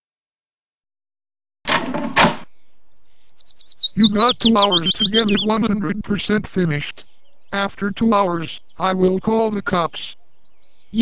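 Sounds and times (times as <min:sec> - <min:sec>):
bird chirping: 0:02.5 - 0:11.0.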